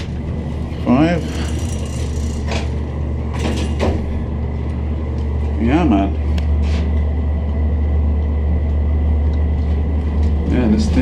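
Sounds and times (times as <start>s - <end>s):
elevator car humming: 0.0s - 11.0s.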